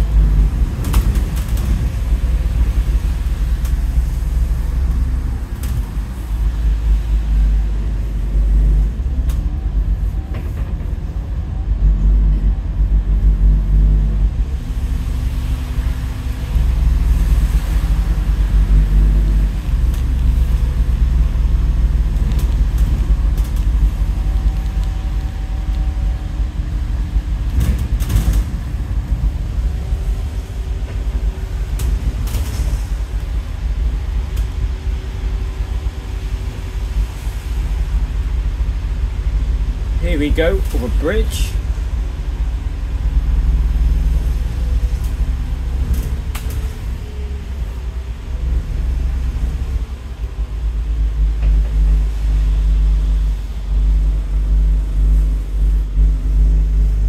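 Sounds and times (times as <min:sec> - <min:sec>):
bus diesel engine rumble: 0:00.0 - 0:57.0.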